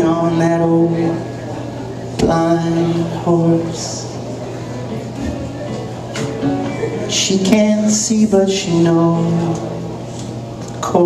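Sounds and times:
person singing folk song: 0:00.0 - 0:01.3, 0:02.2 - 0:04.2, 0:05.7 - 0:09.9
acoustic guitar strumming: 0:04.8 - 0:10.2.

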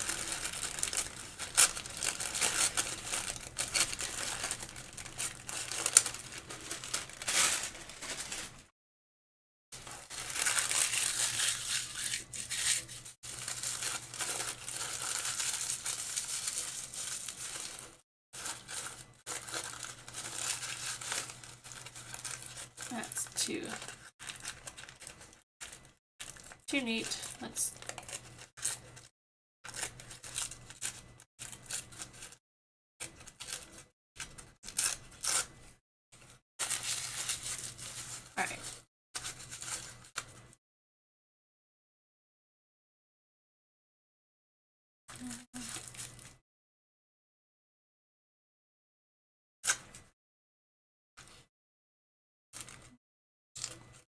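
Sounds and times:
paper crinkling and tearing: 0:00.0 - 0:08.7, 0:09.8 - 0:29.1, 0:29.7 - 0:32.4, 0:33.0 - 0:35.6, 0:36.2 - 0:40.5, 0:45.1 - 0:46.4.

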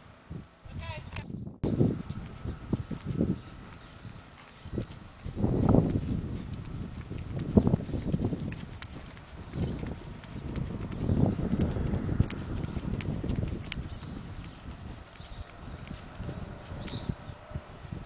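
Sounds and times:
hoofbeats on soft dirt: 0:00.8 - 0:18.0.

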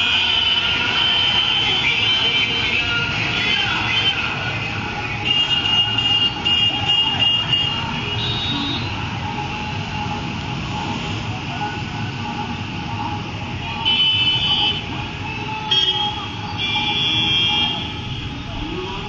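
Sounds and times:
motorcycles passing: 0:00.0 - 0:19.0.

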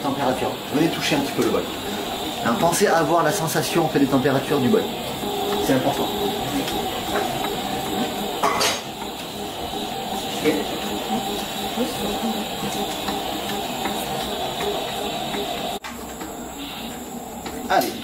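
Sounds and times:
stand mixer motor humming: 0:00.0 - 0:17.6.

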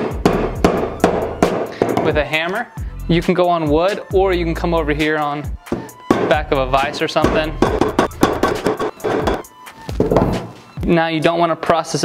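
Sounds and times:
hammer beating tendon on wood: 0:00.0 - 0:02.2, 0:05.6 - 0:10.5.

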